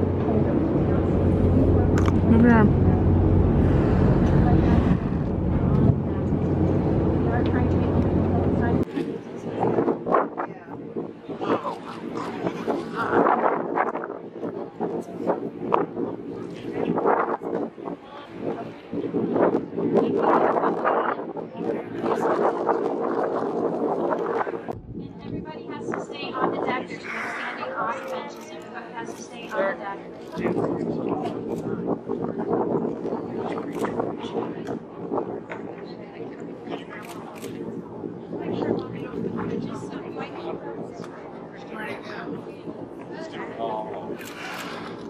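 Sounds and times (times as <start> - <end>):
boat engine drone: 0.0 - 8.8
faint passenger voices: 0.0 - 45.0
wind buffeting microphone: 0.0 - 45.0.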